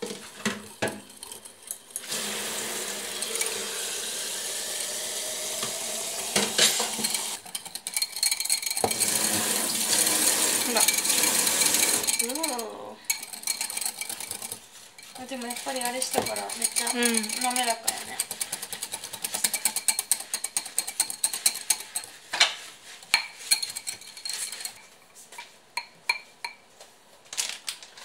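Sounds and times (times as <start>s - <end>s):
whisk scraping glass bowl: 0.0s - 3.7s, 6.3s - 26.6s
person speaking: 10.5s - 11.3s, 12.0s - 13.1s, 15.1s - 18.3s.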